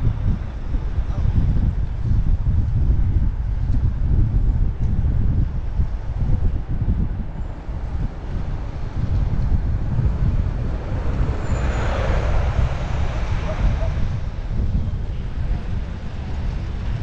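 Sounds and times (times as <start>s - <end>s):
traffic noise: 0.0s - 17.0s
wind buffeting microphone: 0.0s - 17.0s.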